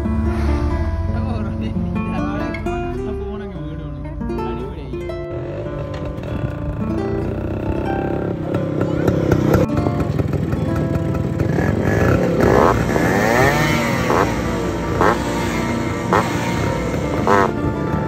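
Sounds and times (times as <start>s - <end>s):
background music: 0.0s - 18.0s
motorcycle engines idling and revving: 0.0s - 18.0s.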